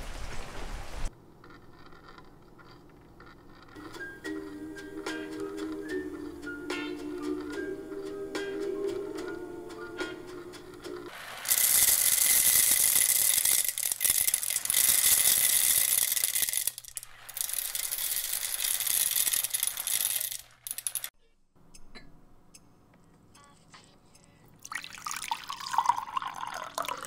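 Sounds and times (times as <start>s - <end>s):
record playing music: 3.8s - 11.1s
coffee beans rattling hiss: 11.1s - 21.1s.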